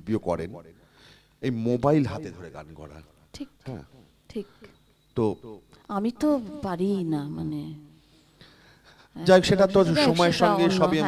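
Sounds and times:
person talking: 9.5 - 11.0.

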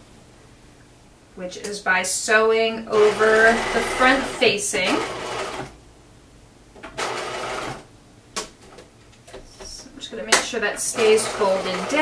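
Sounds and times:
sewing machine stitching: 3.0 - 5.7, 6.8 - 7.8, 10.8 - 12.0.

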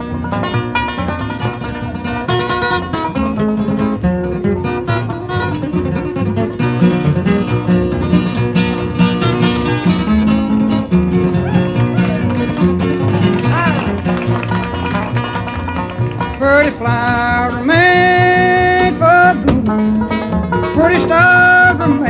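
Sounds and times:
acoustic guitars: 0.0 - 22.0
banjo picking: 0.0 - 22.0
upright bass: 0.0 - 22.0.

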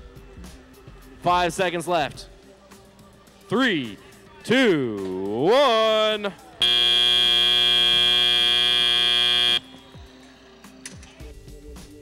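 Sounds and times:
long steady buzzer: 6.6 - 9.6.

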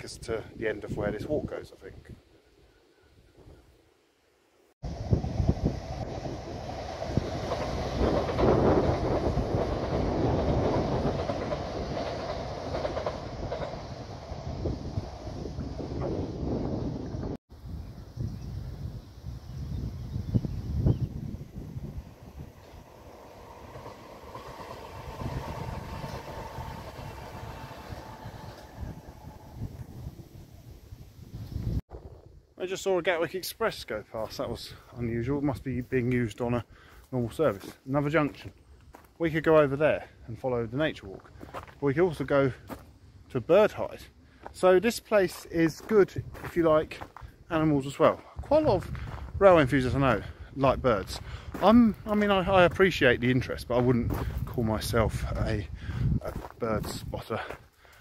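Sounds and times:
electric train passing: 4.9 - 17.4, 21.2 - 30.9
train wheel noise on rails: 4.9 - 17.4, 21.8 - 30.3.

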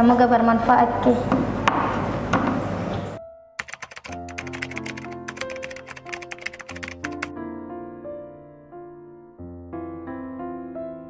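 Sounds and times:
soft piano music: 3.1 - 11.0
keyboard typing clicks: 3.6 - 7.3.

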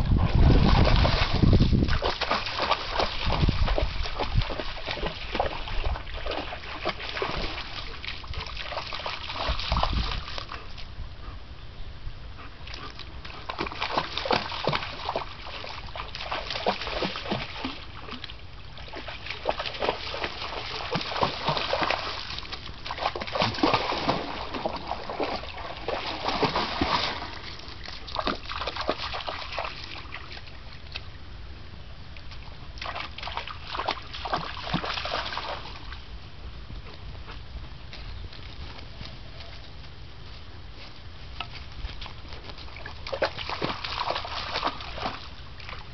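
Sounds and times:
dog splashing through water: 0.0 - 10.9, 12.7 - 30.8, 32.8 - 36.0, 41.9 - 45.9.

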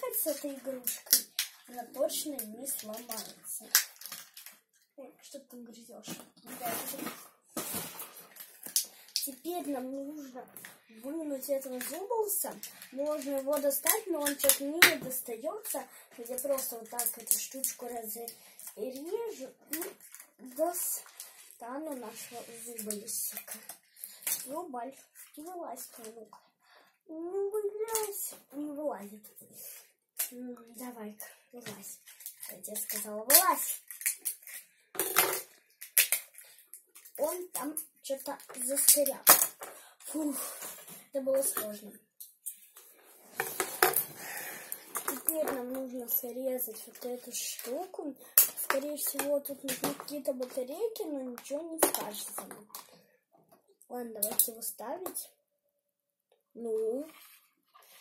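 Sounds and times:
packaging rustling: 0.2 - 4.6, 6.4 - 9.4.

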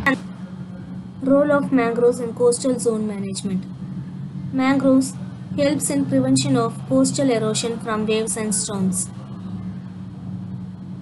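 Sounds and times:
steady low background hum: 0.0 - 11.0.

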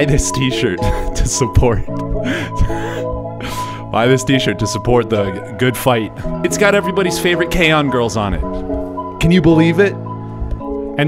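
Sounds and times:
background music with held tones: 0.0 - 11.0
man laughing breathily: 0.8 - 1.4, 2.1 - 3.9.

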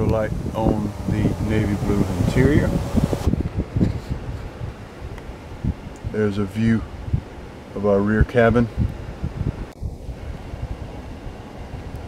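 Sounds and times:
steady hiss: 0.0 - 3.3
microphone handling noise: 0.0 - 4.6
wind buffeting microphone: 0.0 - 7.5, 8.2 - 12.0.

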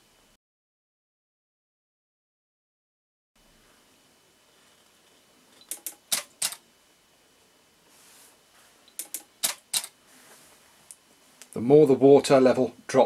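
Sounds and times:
sharp mechanical clicking: 5.6 - 6.6, 9.0 - 10.0.

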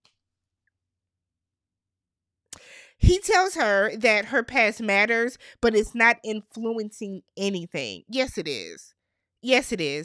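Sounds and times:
sharp in-breath: 2.6 - 3.0
person talking: 3.0 - 10.0.

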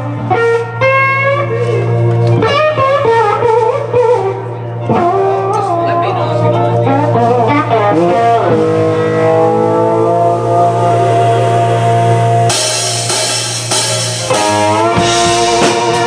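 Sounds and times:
keyboard notes: 0.0 - 16.0
steady bass note: 7.0 - 16.0
drums and cymbals: 10.6 - 16.0.

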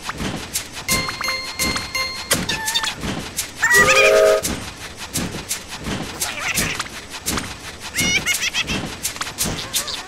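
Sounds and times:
cartoon toy train chugging: 0.9 - 5.3, 6.1 - 10.0
toy train whistle: 3.6 - 4.5.

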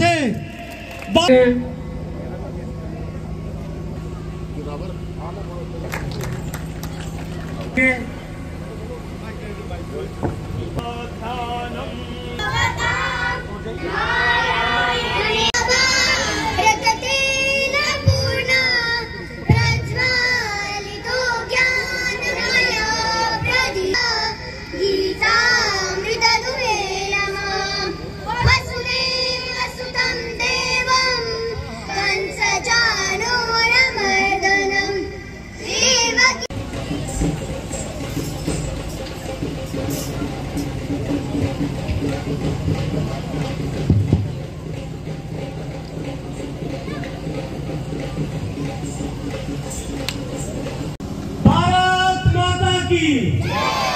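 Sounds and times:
high singing voice over music: 10.8 - 36.5.

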